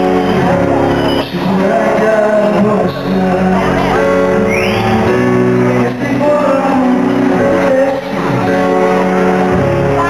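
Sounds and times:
live pop band playing: 0:00.0 - 0:10.0.

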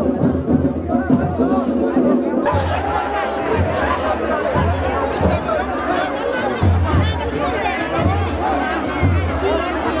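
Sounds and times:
crowd talking: 0:00.0 - 0:10.0.

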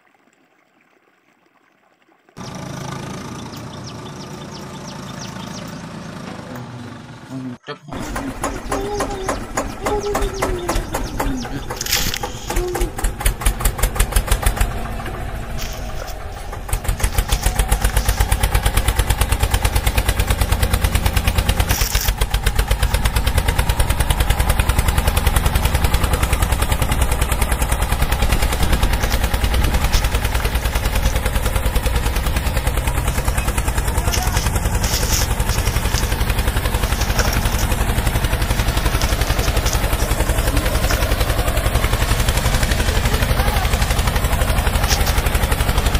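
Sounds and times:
tractor engine chugging: 0:02.4 - 0:45.9.

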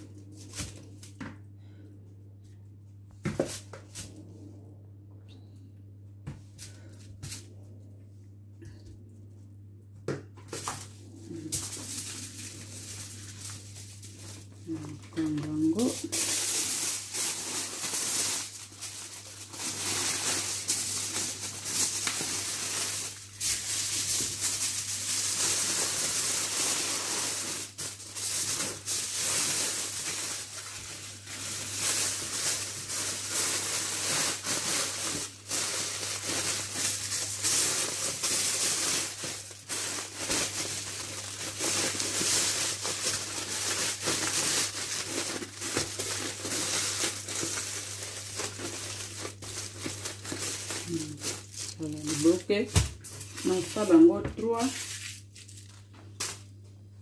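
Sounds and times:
aluminium foil crinkling: 0:00.0 - 0:01.8, 0:06.6 - 0:07.6, 0:10.4 - 0:56.6
faint low hum: 0:00.0 - 0:57.0.

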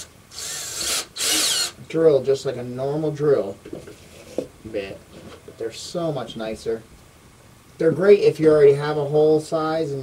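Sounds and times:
cordless drill running: 0:00.0 - 0:01.8.

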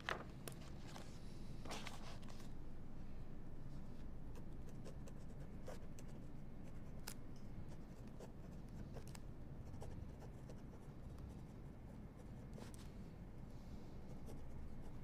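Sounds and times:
paper files rustling: 0:00.0 - 0:02.6
low steady hum: 0:00.0 - 0:15.0.

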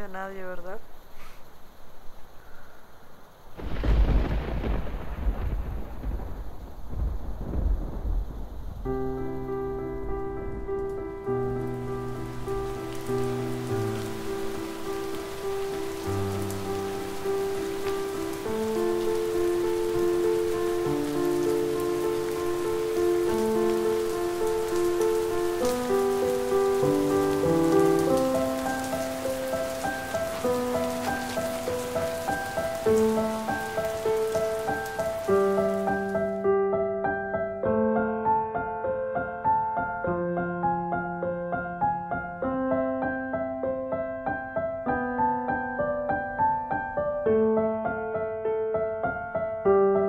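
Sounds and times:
steady rain falling: 0:00.0 - 0:38.6.

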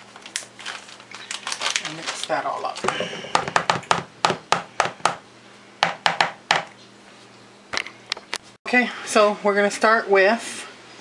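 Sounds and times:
plastic masher tapping plastic bowl: 0:02.8 - 0:05.2.

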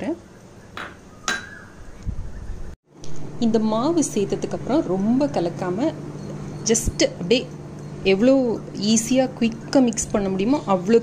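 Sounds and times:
kitchenware clinking: 0:00.8 - 0:01.6.

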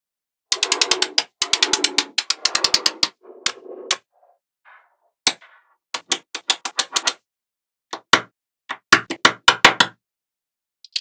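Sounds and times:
magnetic balls clicking together: 0:00.5 - 0:04.0, 0:06.0 - 0:07.2.

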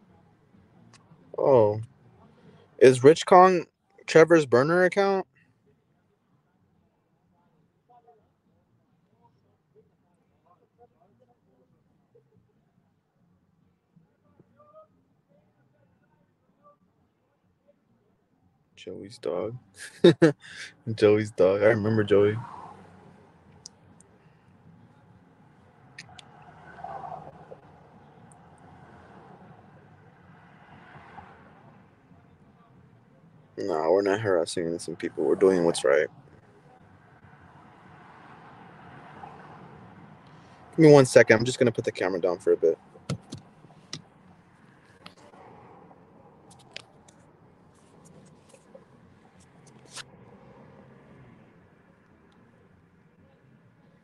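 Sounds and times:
low steady car cabin hum: 0:40.8 - 0:45.3
phone handling clicks and knocks: 0:43.1 - 0:43.5.

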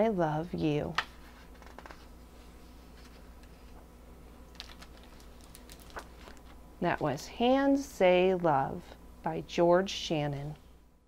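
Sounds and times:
book pages turning: 0:01.0 - 0:06.6.

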